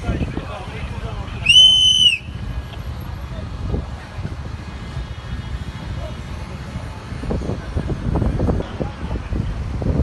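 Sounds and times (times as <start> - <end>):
low street rumble: 0.0 - 10.0
whistle blast: 1.4 - 2.4.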